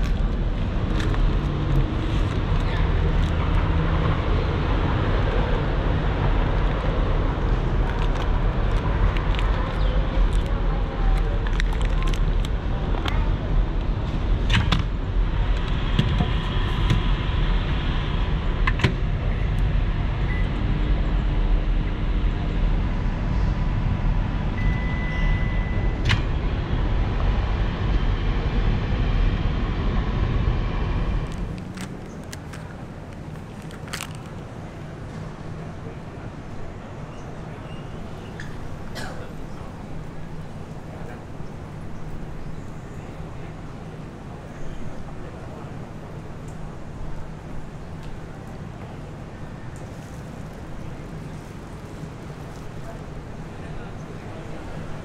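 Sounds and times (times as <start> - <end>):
street traffic noise: 0.0 - 55.0
short high beep: 24.6 - 26.0.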